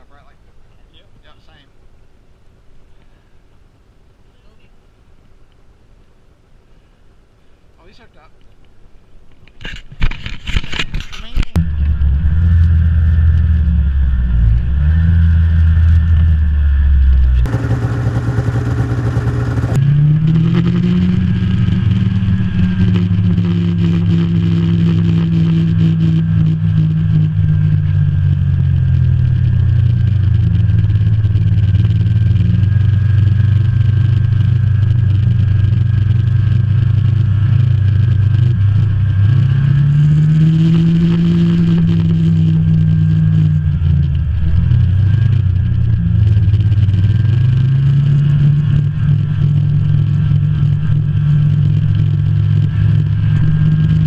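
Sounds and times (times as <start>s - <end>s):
snowmobile engine running: 11.6s - 54.0s.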